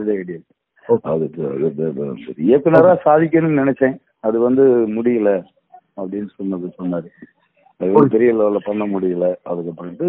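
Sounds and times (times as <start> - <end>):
man's voice over phone line: 0.0 - 3.8, 6.0 - 7.2, 7.8 - 10.0.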